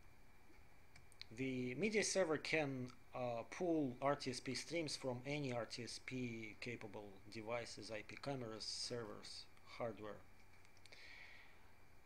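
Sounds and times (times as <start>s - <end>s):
faint hiss: 0.0s - 12.0s
person speaking: 1.2s - 10.3s.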